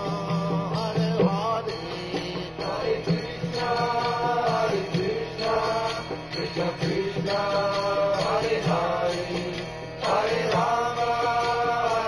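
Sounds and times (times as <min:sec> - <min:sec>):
percussion beat: 0:00.0 - 0:12.0
voices singing a chant: 0:00.0 - 0:12.0.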